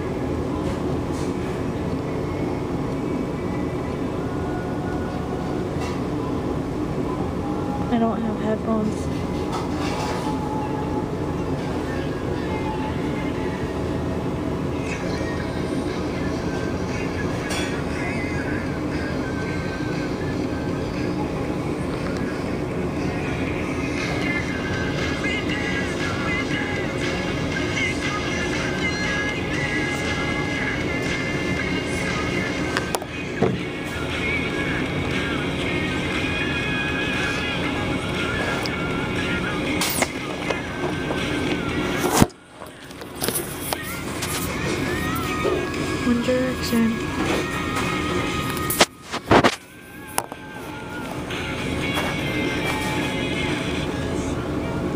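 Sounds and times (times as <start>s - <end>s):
faint music: 0.0s - 54.9s
steady machine hum: 0.0s - 54.9s.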